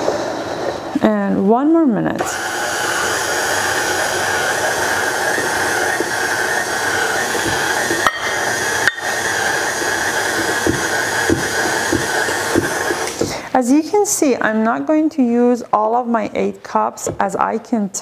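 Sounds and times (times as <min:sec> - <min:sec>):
stand mixer beating dough: 0:02.2 - 0:13.4.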